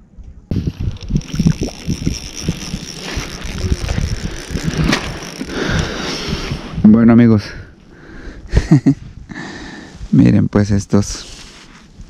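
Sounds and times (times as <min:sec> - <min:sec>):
wind rumbling on microphone: 0:00.0 - 0:10.4.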